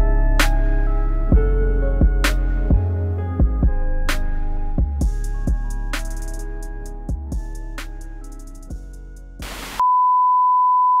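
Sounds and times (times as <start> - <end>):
static hiss: 9.4 - 9.8.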